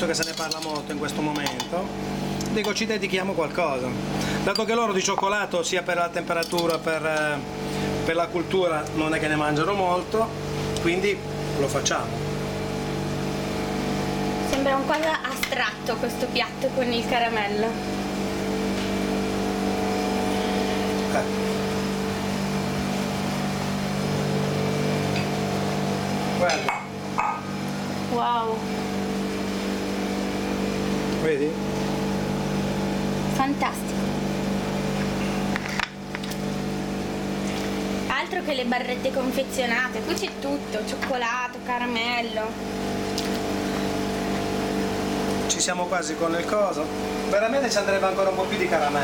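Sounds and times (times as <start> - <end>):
batch freezer mechanical hum: 0.0 - 49.0.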